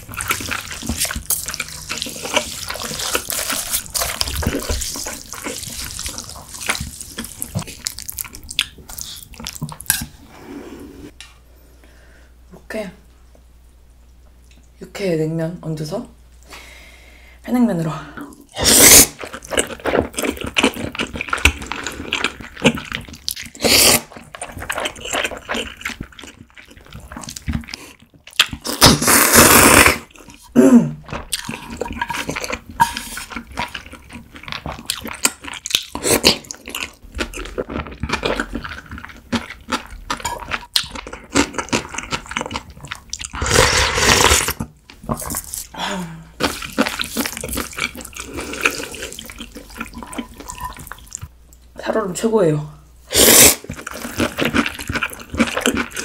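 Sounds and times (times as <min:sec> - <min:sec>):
wet smacking chewing: 0:00.0 - 0:10.1
person slurping noodles: 0:18.5 - 0:20.7, 0:23.5 - 0:24.2, 0:28.6 - 0:33.5, 0:43.3 - 0:44.6, 0:53.1 - 0:56.0.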